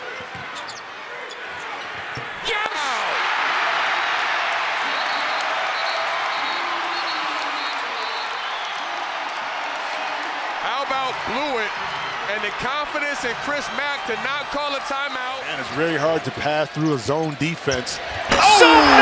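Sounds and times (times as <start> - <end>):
crowd cheering: 0.0 - 19.0.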